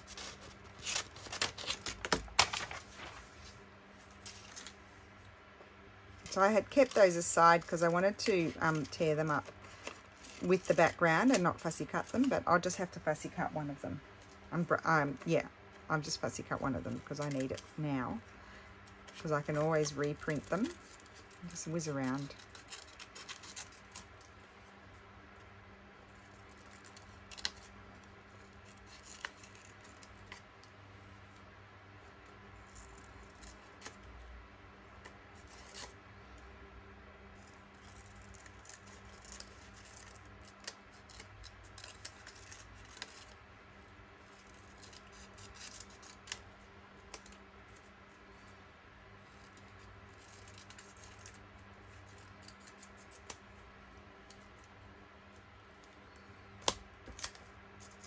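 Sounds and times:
scissors snipping paper: 0:00.0 - 0:02.8, 0:06.3 - 0:13.5, 0:18.9 - 0:24.2, 0:28.4 - 0:30.4, 0:37.4 - 0:43.4, 0:44.2 - 0:47.8, 0:49.4 - 0:53.6
paper rustling: 0:00.0 - 0:04.9
low steady hum: 0:00.0 - 0:58.0.

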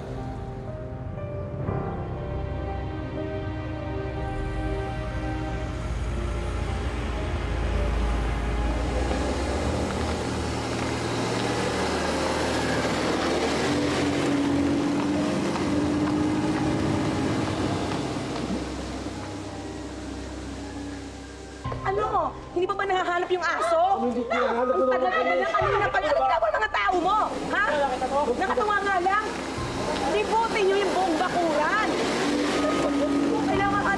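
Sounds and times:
soft background music: 0:00.0 - 0:33.9
car driving past: 0:04.1 - 0:21.7.

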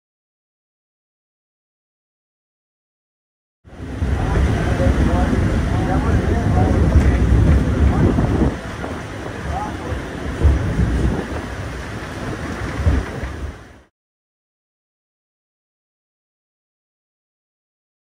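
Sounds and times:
wind buffeting microphone: 0:03.7 - 0:13.9.

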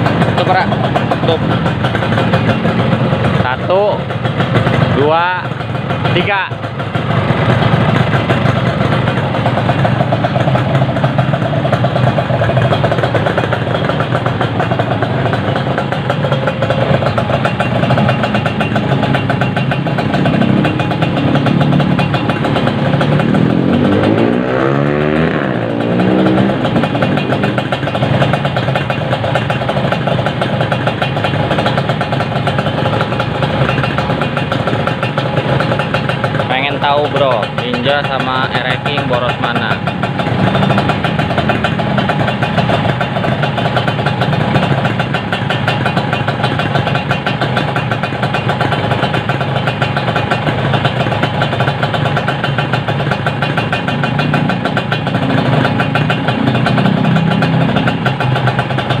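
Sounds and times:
motorcycle engines idling: 0:00.0 - 0:59.0.

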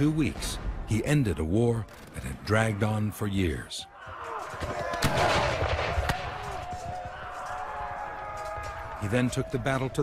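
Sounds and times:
musket fire cracks: 0:04.6 - 0:07.7.

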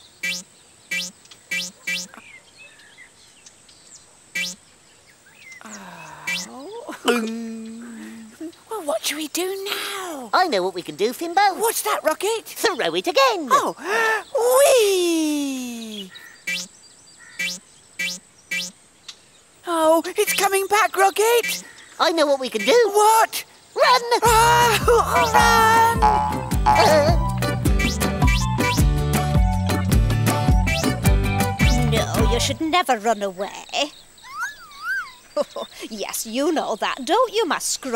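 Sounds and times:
faint birdsong chirps: 0:00.0 - 0:28.8, 0:31.6 - 0:37.9
cartoon boing: 0:25.2 - 0:28.4.

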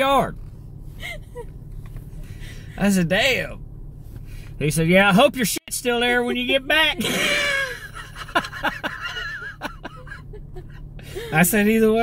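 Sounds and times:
low car cabin hum: 0:00.0 - 0:12.0
man and woman laughing: 0:07.0 - 0:11.4.

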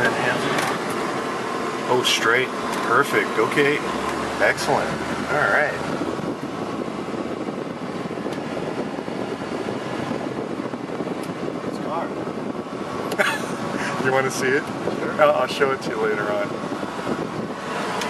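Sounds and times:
car interior rumble and hiss: 0:00.0 - 0:18.0.

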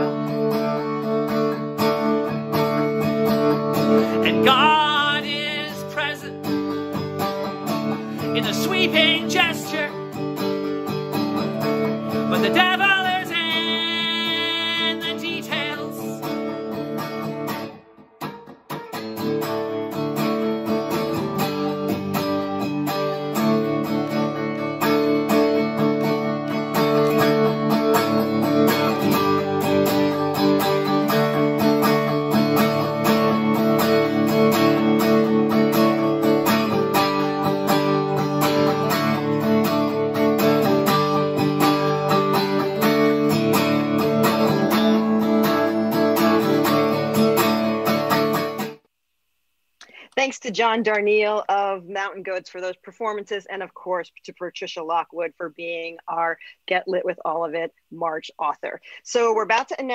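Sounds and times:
electric guitar strummed chords: 0:00.0 - 0:48.8
person singing: 0:03.8 - 0:10.7, 0:11.6 - 0:16.6, 0:43.8 - 0:47.8.

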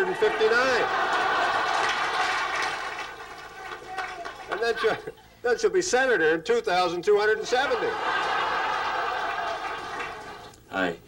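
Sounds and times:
large audience laughing: 0:00.0 - 0:03.7, 0:07.6 - 0:10.5.

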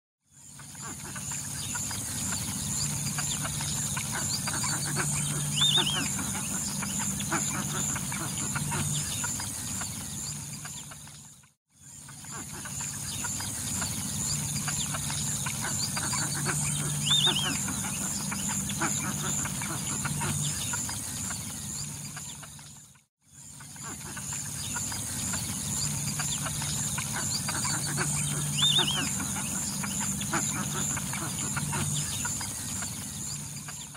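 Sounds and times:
steady high hum: 0:00.3 - 0:33.9
birds calling: 0:00.4 - 0:33.9.

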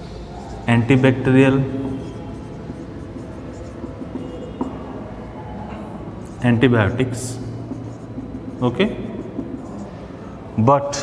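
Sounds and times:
low background hum: 0:00.0 - 0:11.0
marker writing on whiteboard: 0:00.0 - 0:11.0.

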